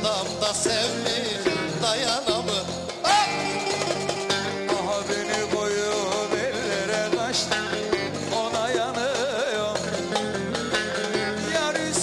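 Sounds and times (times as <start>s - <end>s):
person singing: 0.0s - 12.0s.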